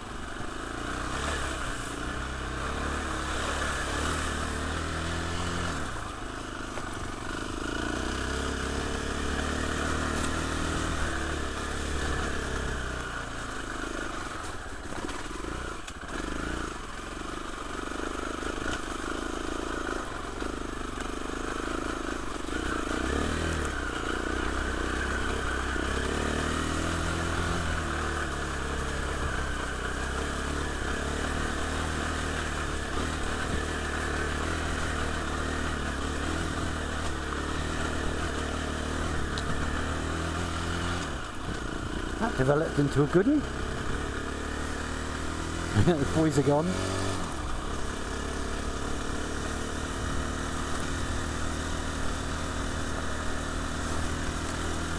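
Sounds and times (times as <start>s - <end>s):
motorcycle engine revving: 0.0s - 54.9s.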